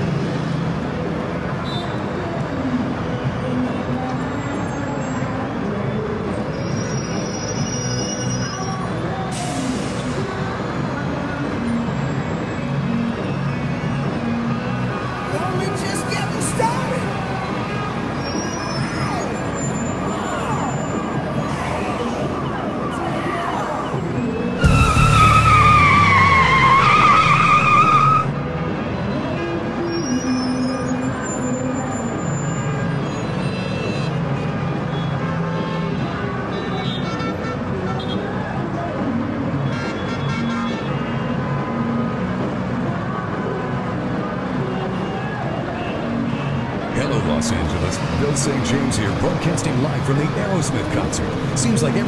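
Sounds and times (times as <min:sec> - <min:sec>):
car engines running: 0:18.8 - 0:29.0, 0:45.8 - 0:52.0
tyre screech: 0:24.6 - 0:28.3.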